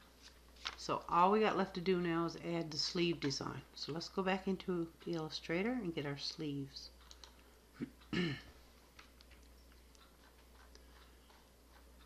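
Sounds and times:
computer mouse clicks: 7.0 - 7.5
man clearing his throat: 7.8 - 8.6.

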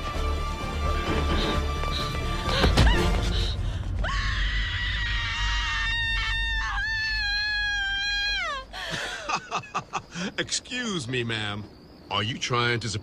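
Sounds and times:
woman screaming: 2.5 - 8.8.

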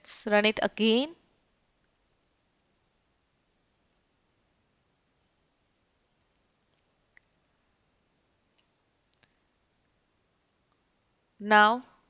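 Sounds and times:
woman speaking: 0.0 - 1.2, 11.4 - 12.0.

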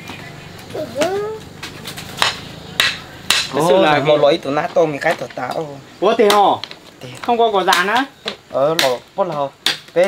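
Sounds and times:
wooden branch knocking on rocks: 1.6 - 3.6, 7.6 - 10.0.

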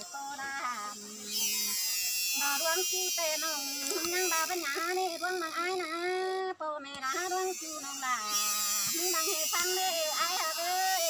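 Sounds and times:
person singing folk song: 0.0 - 1.8
steady high buzz: 0.0 - 11.0.

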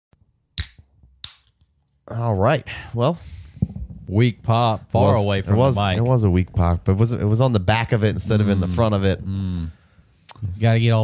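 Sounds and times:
sharp pops: 3.5 - 4.1.

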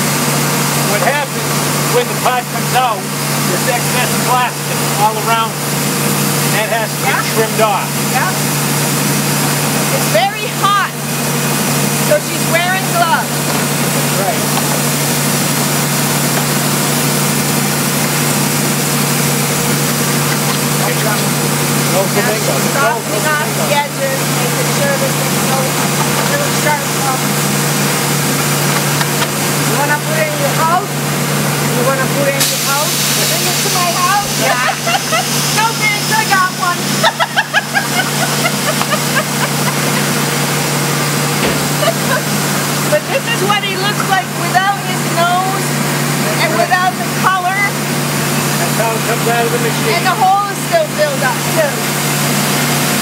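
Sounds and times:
machinery low hum: 0.0 - 53.0
loud machine hiss: 30.9 - 46.2
people laughing: 34.3 - 35.6, 36.8 - 40.5, 41.6 - 42.4.

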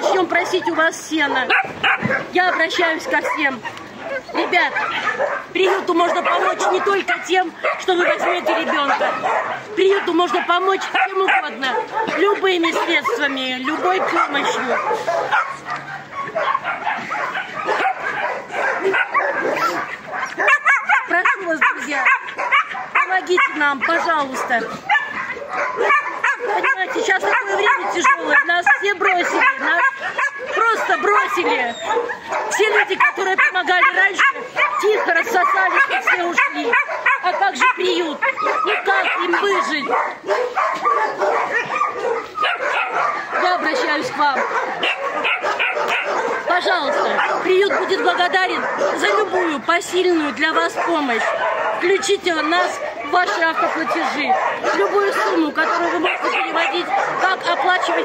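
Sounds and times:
puppies yipping and whimpering: 0.0 - 58.0.

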